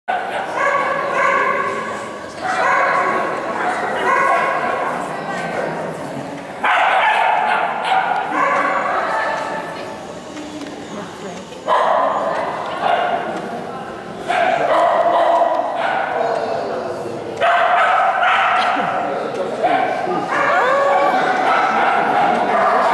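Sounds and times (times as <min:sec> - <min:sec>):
people chatting: 0:00.1 - 0:22.9.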